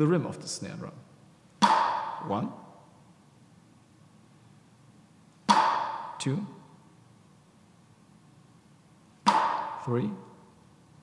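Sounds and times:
drumstick striking drum pad rim: 1.6 - 2.3, 5.5 - 6.2, 9.3 - 9.9.

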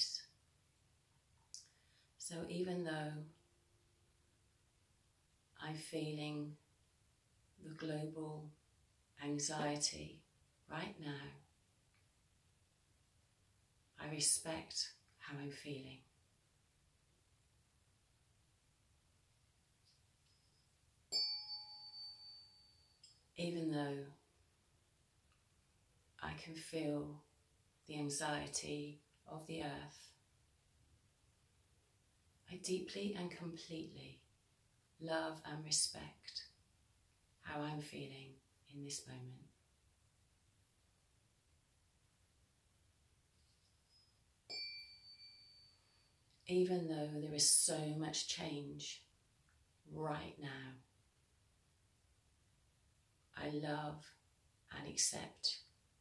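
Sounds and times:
tuning fork ringing: 20.3 - 23.2, 43.9 - 46.3
mallet striking tuning fork: 21.1 - 22.7, 44.5 - 45.8.

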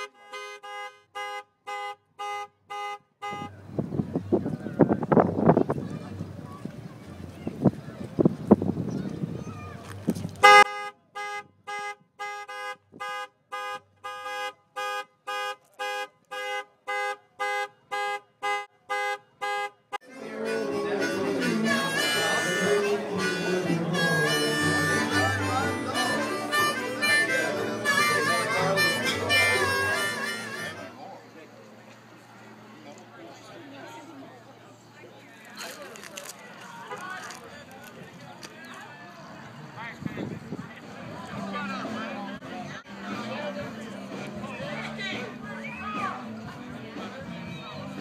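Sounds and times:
car horn honking: 0.0 - 3.6, 10.4 - 30.9
harmonica music: 0.0 - 3.6, 10.4 - 15.5, 16.4 - 31.0
bass line: 2.2 - 10.8, 20.0 - 30.9.

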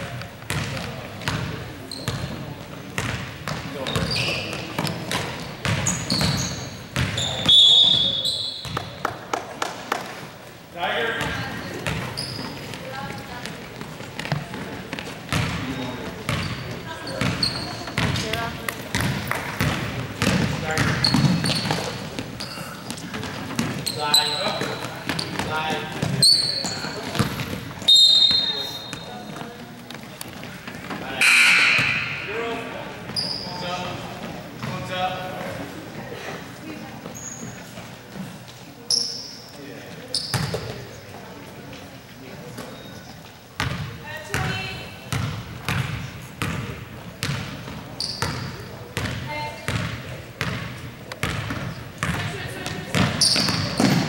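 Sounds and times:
sneaker squeaks: 0.3 - 9.0, 11.2 - 29.6, 30.3 - 34.8, 37.0 - 41.2, 42.4 - 46.6, 47.2 - 50.6, 51.2 - 54.0
basketball bouncing on hardwood: 47.2 - 47.5.

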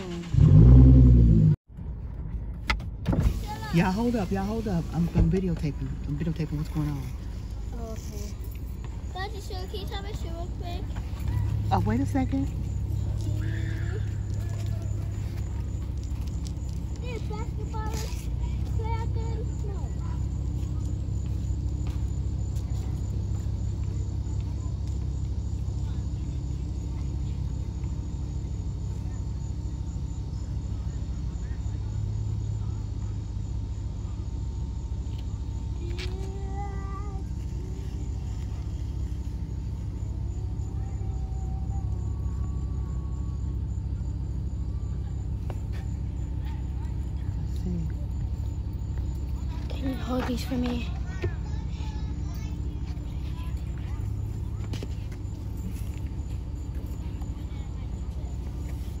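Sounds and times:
low rumble: 0.0 - 3.5
faint distant voices: 3.3 - 59.0.

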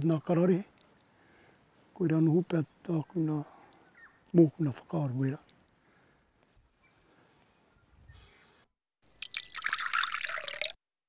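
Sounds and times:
tea pouring and splashing: 9.0 - 10.8.

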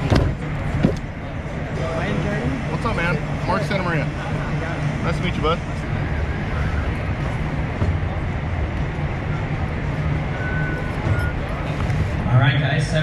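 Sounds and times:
background chatter of people: 0.0 - 13.0.

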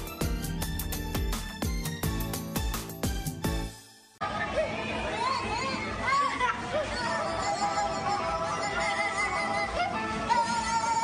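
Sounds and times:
music: 0.0 - 4.3, 7.8 - 11.0.

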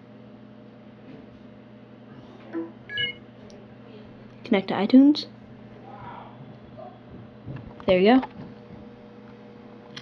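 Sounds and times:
faint steady hum: 0.0 - 10.0
short electronic beep: 2.9 - 3.2.

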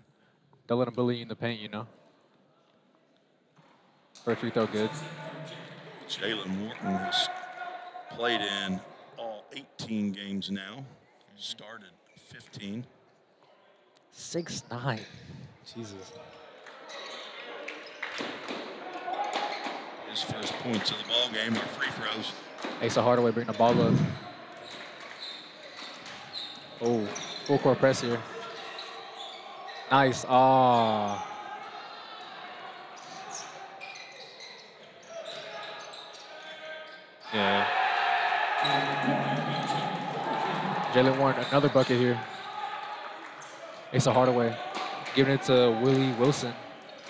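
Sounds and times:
crowd voices in gym: 0.0 - 47.0
crowd reacting: 37.3 - 46.8.

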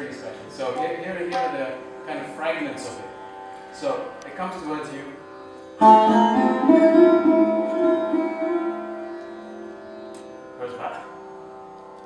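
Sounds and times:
sarod plucked notes: 0.0 - 12.0.

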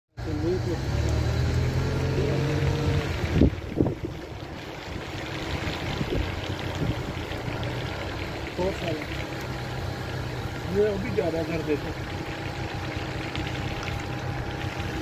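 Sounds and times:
car engine humming: 0.2 - 15.0.

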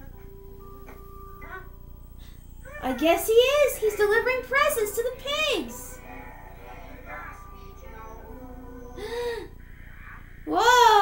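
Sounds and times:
faint cartoon music: 0.0 - 11.0.

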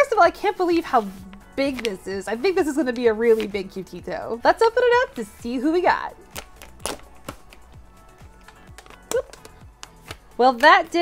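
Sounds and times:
plastic packaging crinkling: 6.2 - 7.7.

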